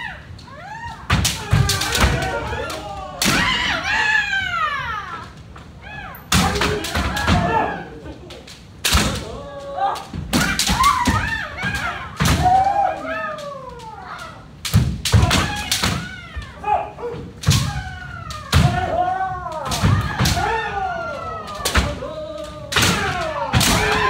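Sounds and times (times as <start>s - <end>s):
loud shouts: 0.0s - 8.0s, 9.0s - 24.0s.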